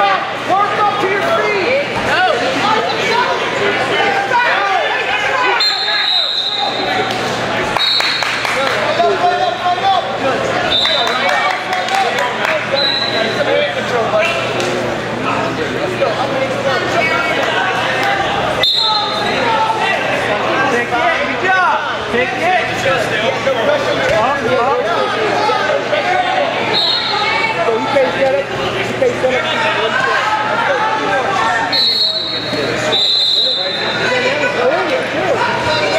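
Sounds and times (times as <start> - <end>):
crowd talking and calling out: 0.0 - 35.9
referee whistle blasts: 5.5 - 6.9, 12.8 - 13.2, 18.6 - 19.2, 26.7 - 27.4, 31.7 - 34.0.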